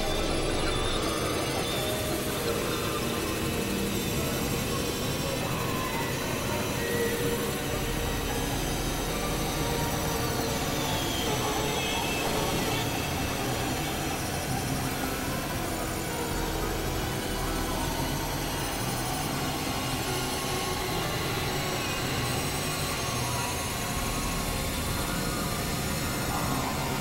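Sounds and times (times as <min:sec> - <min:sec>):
experimental electronic music drone: 0:00.0 - 0:27.0.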